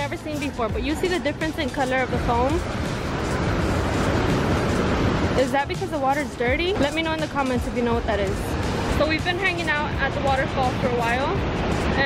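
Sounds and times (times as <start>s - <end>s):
waves breaking over rocks: 0.0s - 12.0s.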